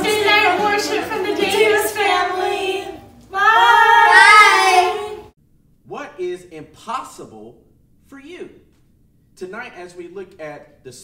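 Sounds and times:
girls' long high cry: 4.0s - 4.9s.

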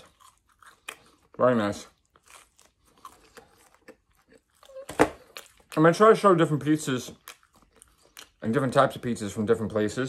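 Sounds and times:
biting into crisp pizza crust: 0.0s - 6.0s
faint chewing with crunches: 0.0s - 9.4s.

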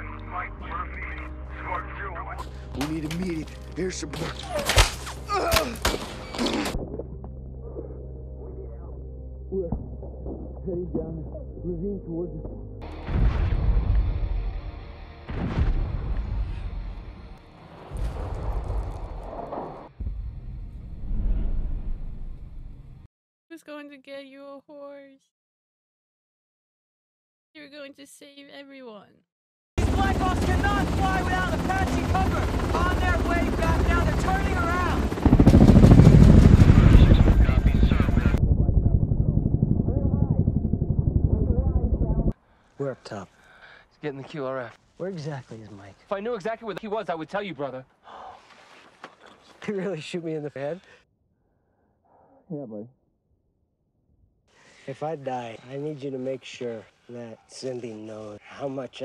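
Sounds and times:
helicopter rotor chop: 29.8s - 42.3s
people talking: 30.0s - 35.0s, 36.7s - 38.4s
heavy explosions with rumble: 35.2s - 42.3s.

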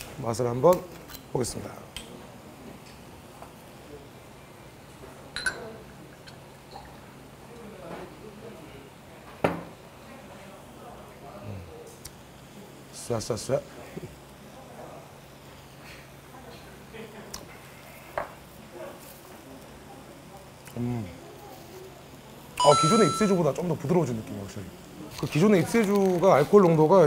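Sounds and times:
glass clink: 5.4s - 5.7s
liquid pouring into shot glass: 5.4s - 7.2s
seafood sizzling in a pan: 12.2s - 22.6s, 23.2s - 27.0s.

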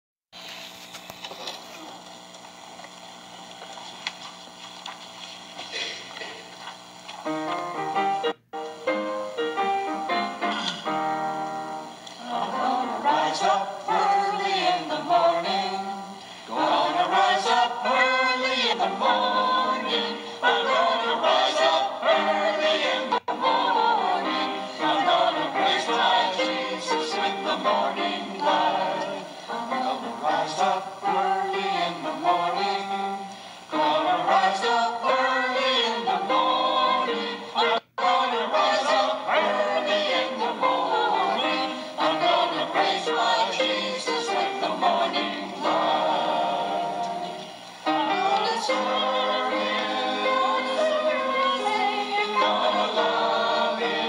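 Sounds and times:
choir singing: 9.8s - 54.0s.

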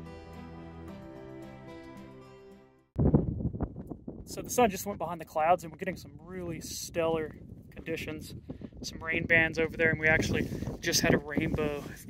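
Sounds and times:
soft guitar music: 0.0s - 2.9s
wind buffeting microphone: 3.0s - 12.0s.

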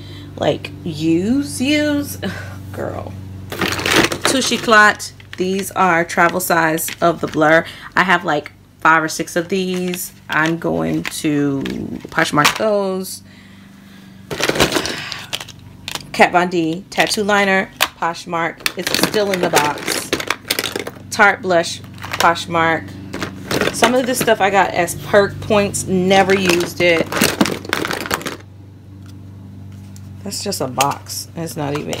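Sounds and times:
steady low hum: 0.0s - 32.0s
plastic tubes clattering into box: 3.5s - 5.4s, 14.3s - 16.0s, 18.6s - 21.1s, 23.1s - 24.5s, 26.2s - 28.4s.

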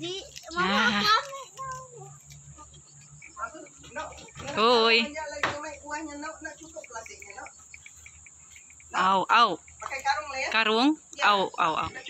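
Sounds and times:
insect chirping: 0.0s - 12.0s.

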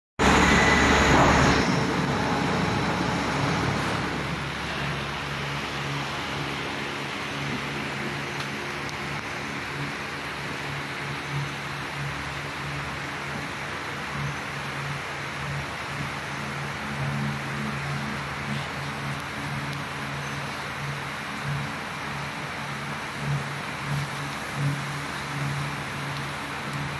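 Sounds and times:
loud rush of noise: 0.2s - 14.1s
low machine hum: 0.2s - 26.9s.

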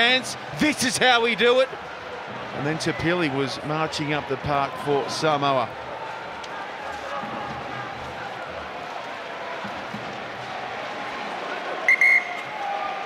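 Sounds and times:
stadium crowd noise: 0.0s - 13.0s
referee's whistle blast: 11.9s - 12.5s.

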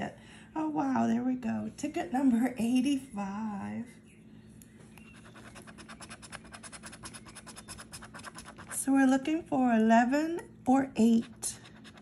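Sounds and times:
coin scratching lottery ticket: 5.2s - 8.8s.

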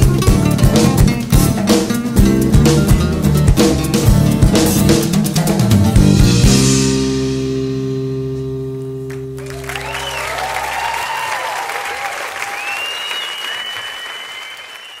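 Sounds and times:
audience applause: 9.1s - 15.0s
audience cheering: 9.4s - 15.0s
long whistle: 9.6s - 15.0s.

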